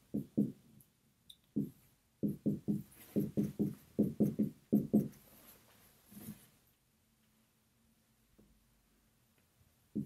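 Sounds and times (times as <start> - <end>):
writing taps on a board: 0.0 - 0.6, 1.5 - 5.2.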